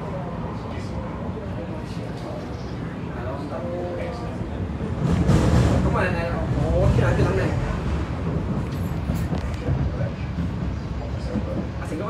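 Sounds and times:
faint voices: 0:00.0 - 0:12.0
train wheels rumbling on track: 0:00.0 - 0:12.0.

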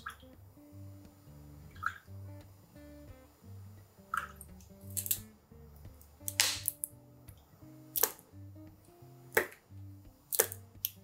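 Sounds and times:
soft plucked background music: 0:00.0 - 0:11.0
sauce splashing: 0:04.1 - 0:05.3, 0:10.3 - 0:11.0.

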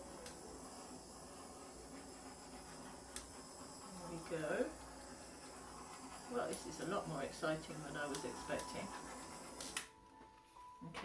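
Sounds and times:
torch shut-off click: 0:00.0 - 0:00.5, 0:09.5 - 0:09.9
butane torch hissing: 0:00.0 - 0:10.0.

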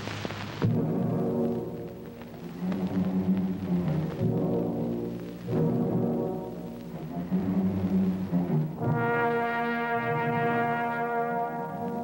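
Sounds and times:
brass sustained chord: 0:08.7 - 0:12.0.

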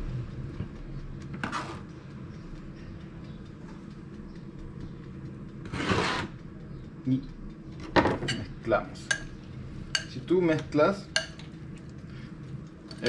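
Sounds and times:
food scraping in a bowl: 0:01.4 - 0:01.8, 0:05.6 - 0:06.4.

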